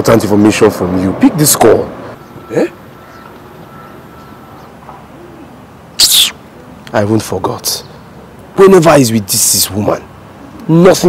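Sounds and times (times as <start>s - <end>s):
low cooing call: 2.2s - 6.8s.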